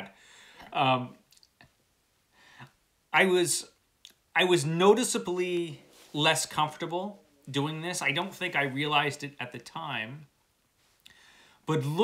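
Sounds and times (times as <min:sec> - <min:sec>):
person breathing in: 0:00.2 - 0:00.7, 0:11.1 - 0:11.6.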